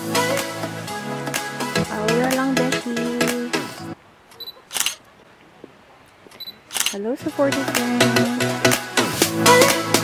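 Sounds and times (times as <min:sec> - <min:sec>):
background music: 0:00.0 - 0:04.0, 0:07.1 - 0:10.0
camera focus beep: 0:04.3 - 0:05.0, 0:06.3 - 0:07.0
camera shutter click: 0:04.4 - 0:05.0, 0:06.7 - 0:07.0.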